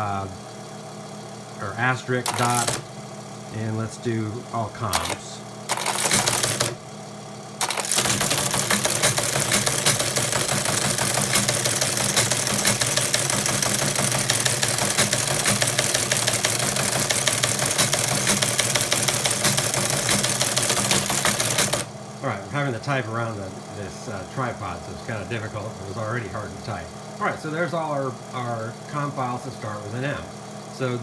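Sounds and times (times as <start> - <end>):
steady motor hum: 0.0 - 31.0
teleprinter typebars clattering: 2.2 - 2.8, 4.9 - 6.8, 7.6 - 21.9.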